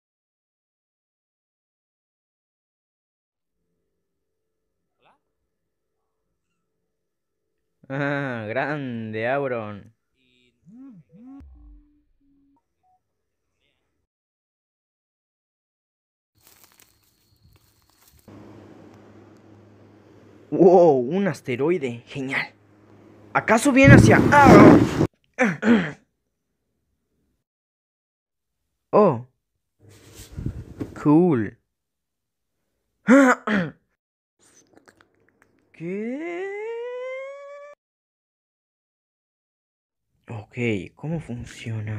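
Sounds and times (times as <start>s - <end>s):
swooping voice-like sound: 10.6s - 11.8s
faint hiss and hum: 18.3s - 25.1s
low thud: 23.8s - 25.1s
man clearing throat: 25.4s - 26.0s, 33.1s - 33.8s.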